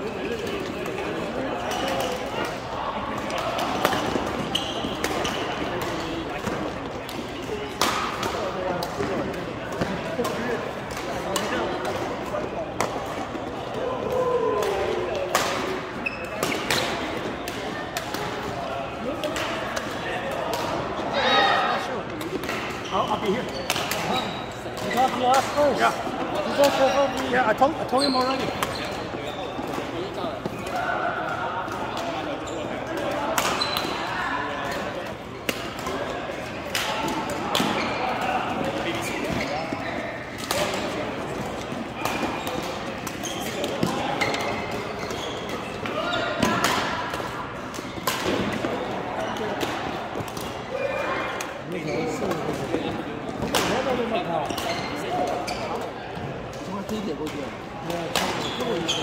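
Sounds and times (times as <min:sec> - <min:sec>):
rackets hitting shuttlecock: 0:00.4 - 0:20.8, 0:22.0 - 0:34.0, 0:34.6 - 0:50.6.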